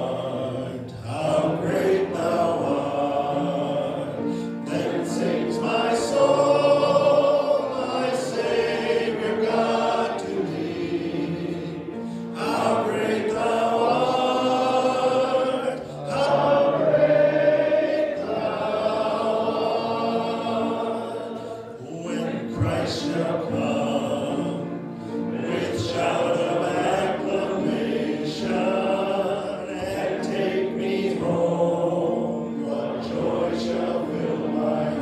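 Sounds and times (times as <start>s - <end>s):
congregation singing a hymn: 0.0s - 35.0s
man singing into a microphone: 21.8s - 24.7s.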